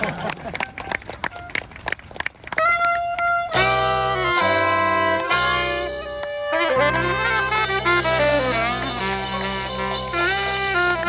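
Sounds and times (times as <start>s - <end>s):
saxophone ensemble chords: 2.6s - 11.0s.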